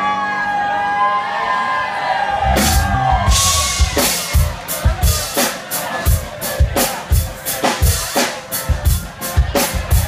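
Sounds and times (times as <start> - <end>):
crowd whooping: 0.0 - 10.0
drum kit with cymbal crashes: 2.5 - 10.0.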